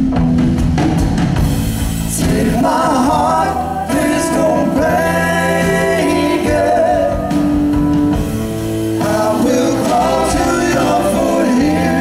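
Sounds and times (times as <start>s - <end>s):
electric guitar and bass: 0.0s - 12.0s
voices singing together: 2.1s - 12.0s.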